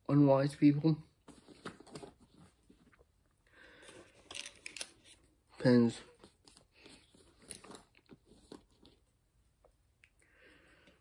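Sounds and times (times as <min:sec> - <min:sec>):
small items handled clicking: 0:04.2 - 0:05.0.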